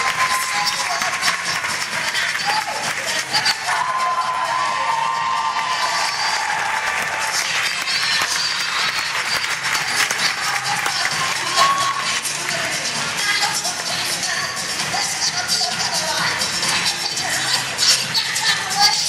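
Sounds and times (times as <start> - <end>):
audience applauding: 0.0 - 12.7
music playing: 0.0 - 19.0.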